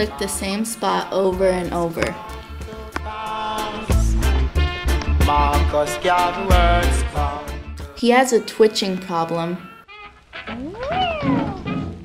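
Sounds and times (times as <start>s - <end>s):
dog whining howl: 10.5s - 12.0s.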